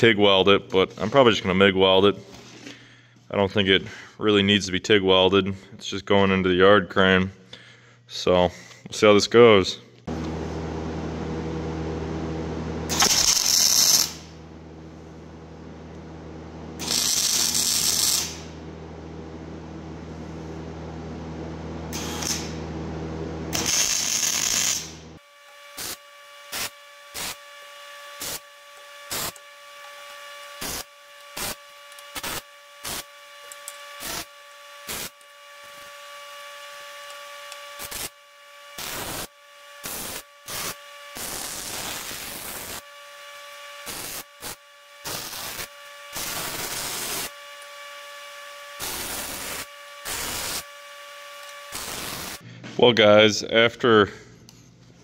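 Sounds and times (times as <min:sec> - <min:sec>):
steady hum: 0:09.1 - 0:25.2
crackling welding bursts: 0:12.9 - 0:14.4, 0:16.8 - 0:18.6, 0:21.9 - 0:22.6, 0:23.5 - 0:25.0, 0:25.6 - 0:43.0, 0:43.8 - 0:47.6, 0:48.8 - 0:52.4.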